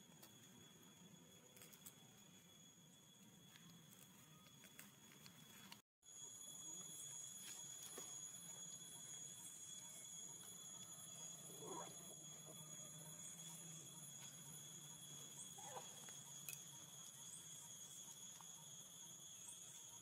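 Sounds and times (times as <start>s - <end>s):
faint high whine: 0.0s - 20.0s.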